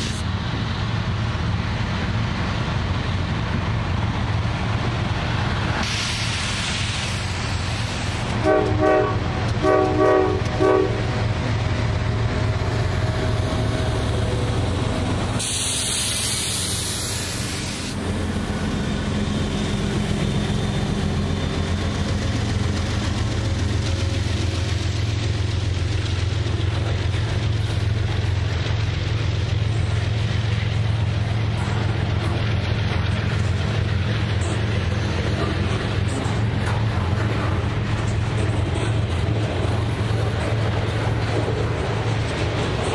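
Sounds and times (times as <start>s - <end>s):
loud hiss: 0.0s - 0.2s, 5.8s - 8.4s, 15.2s - 18.2s
locomotive engine drone: 0.0s - 42.9s
train cars rumbling on rails: 0.0s - 42.9s
train horn blasts: 8.4s - 11.2s.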